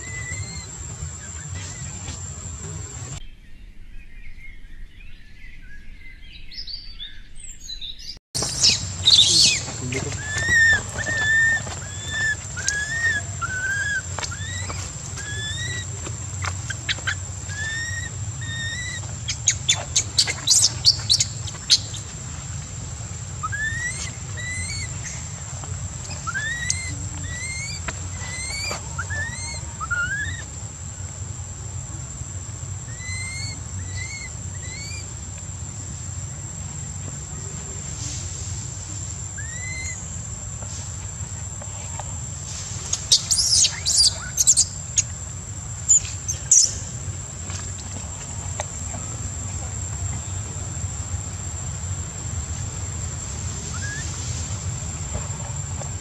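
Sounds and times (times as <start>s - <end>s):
infant monkey crying and screaming: 0.0s - 3.2s, 8.4s - 22.2s, 23.3s - 25.4s, 26.0s - 30.6s, 32.9s - 35.2s, 39.3s - 40.1s, 42.9s - 45.1s, 53.6s - 54.2s.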